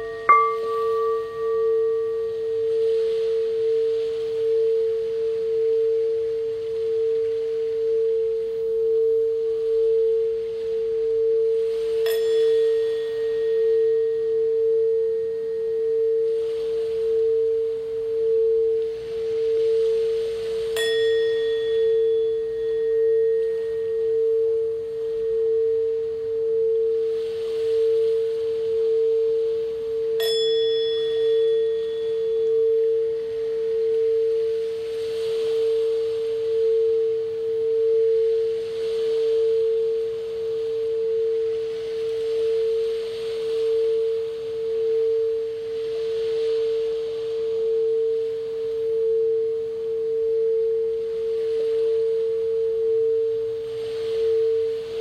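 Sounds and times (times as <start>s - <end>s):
struck bowl ringing: 0.0s - 6.6s, 11.4s - 34.4s
singing bowl hum: 0.0s - 55.0s.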